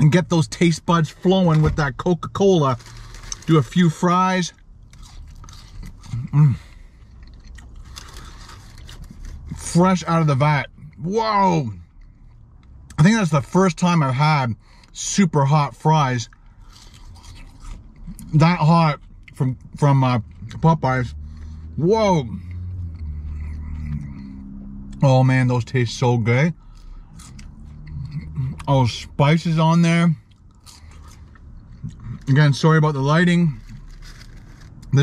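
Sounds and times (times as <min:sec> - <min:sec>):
low steady hum: 0:00.0 - 0:35.0
chewing fries: 0:02.3 - 0:09.8, 0:16.2 - 0:20.7, 0:30.2 - 0:32.4.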